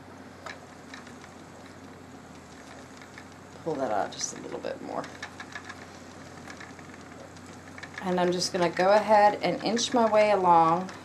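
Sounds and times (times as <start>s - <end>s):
spinning wheel whirring and ticking: 0.4s - 11.0s.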